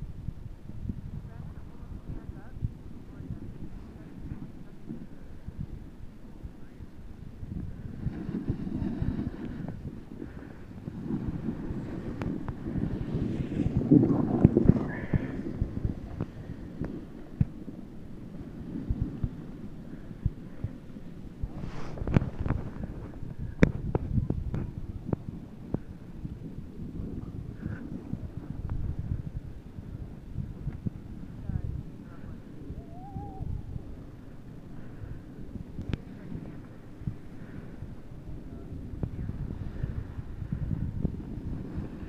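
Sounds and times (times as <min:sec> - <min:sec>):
wind rushing over microphone: 0:00.0 - 0:42.0
wavering whistle-like tone: 0:32.8 - 0:33.7.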